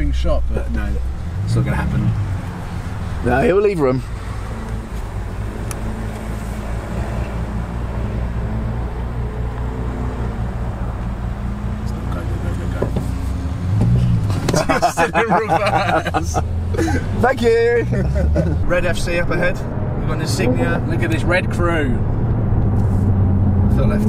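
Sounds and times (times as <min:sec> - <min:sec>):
car engine idling: 0:00.0 - 0:23.1
voices: 0:14.3 - 0:22.0.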